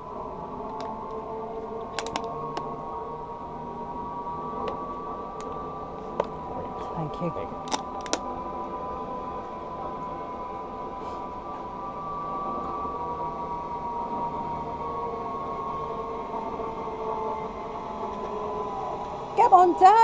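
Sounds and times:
zipline pulleys whining on cable: 0.0 - 20.0.

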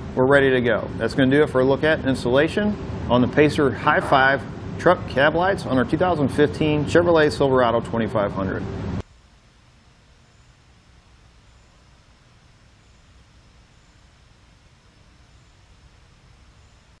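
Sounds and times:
low hum with light hiss: 0.0 - 17.0.

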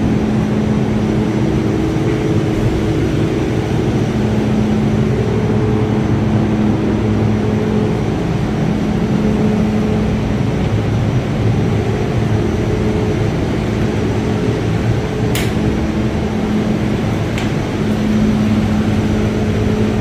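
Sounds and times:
constant low hum: 0.0 - 20.0
ventilation fans rushing air: 0.0 - 20.0.

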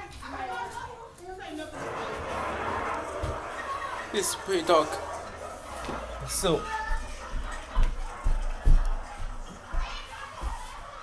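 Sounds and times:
indistinct voices of children and adults: 0.0 - 11.0.

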